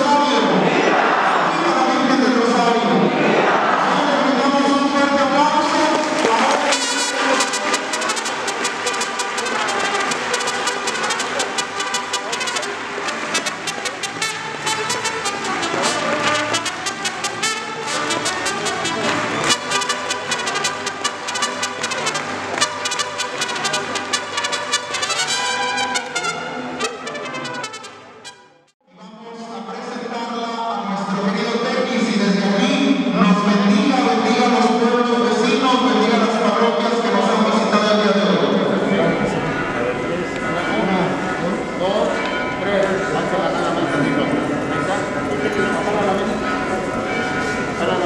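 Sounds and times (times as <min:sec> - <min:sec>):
voices: 0:00.0 - 0:21.0, 0:29.0 - 0:48.0
mariachi band playing: 0:00.0 - 0:28.8, 0:30.7 - 0:48.0.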